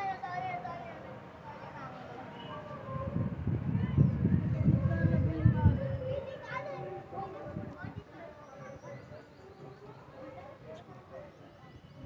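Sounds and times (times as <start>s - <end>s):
children's voices: 0.0s - 11.8s
faint voices talking: 0.0s - 12.0s.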